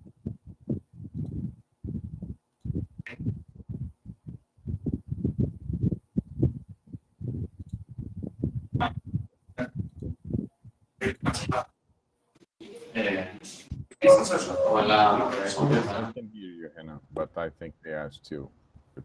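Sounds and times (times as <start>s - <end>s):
muffled talking over call line: 12.6s - 16.2s.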